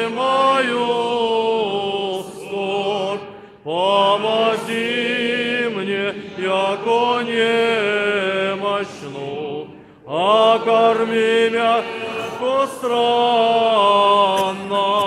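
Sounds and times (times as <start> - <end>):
choir singing unaccompanied chant: 0.0 - 15.0
singer breath: 3.3 - 3.6, 9.7 - 10.0.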